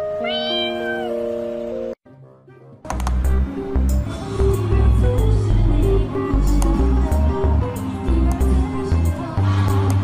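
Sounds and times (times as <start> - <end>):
background music with held notes: 0.0 - 10.0
kitten meowing: 0.2 - 1.2.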